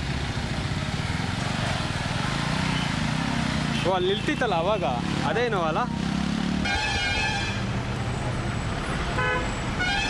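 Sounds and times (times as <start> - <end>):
vehicle horn toots: 6.6 - 7.6, 9.2 - 10.0.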